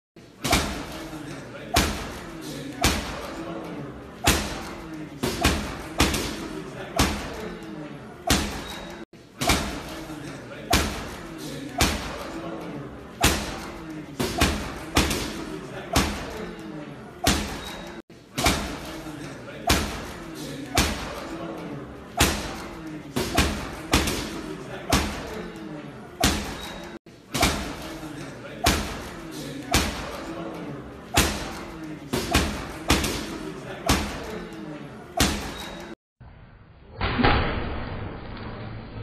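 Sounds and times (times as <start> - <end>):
murmur of voices: 0.2 - 36.0.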